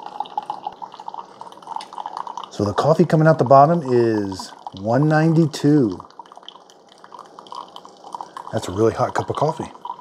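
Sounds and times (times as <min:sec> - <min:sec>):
coffee trickling into mug: 0:00.0 - 0:10.0.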